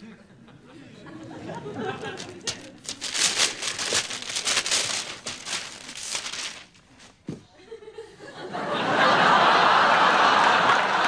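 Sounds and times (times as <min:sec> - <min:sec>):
wrapping paper tearing and crumpling: 0:02.0 - 0:07.2.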